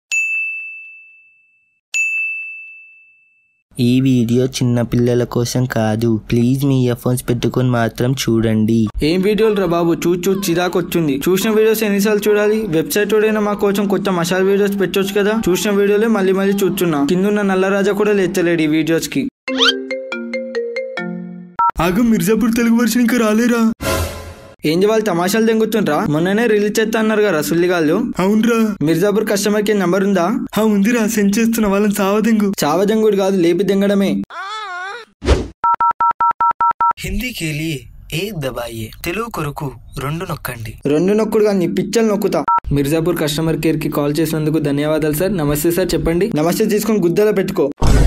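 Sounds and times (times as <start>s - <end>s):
bright bell-like ding: 0.1s - 3.5s
man talking: 3.8s - 19.3s, 37.0s - 47.7s
two-tone beep: 35.6s - 37.0s.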